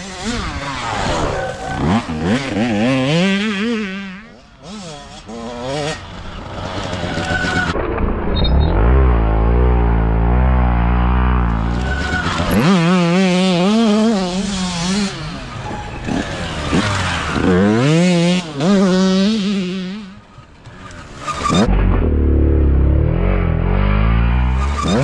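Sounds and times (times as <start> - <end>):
dirt bike engines revving: 0.0 - 25.0.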